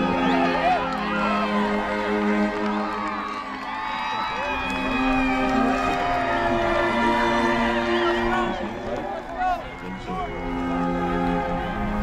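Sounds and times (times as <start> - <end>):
background music of held notes: 0.0 - 12.0
crowd shouting and cheering: 0.0 - 12.0.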